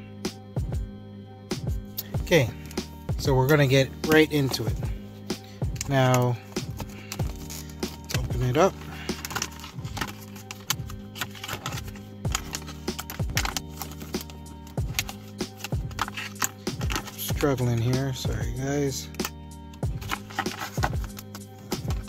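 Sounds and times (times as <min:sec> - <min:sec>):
background music: 0:00.0 - 0:22.0
plastic packaging crackling: 0:05.8 - 0:17.3, 0:19.9 - 0:22.0.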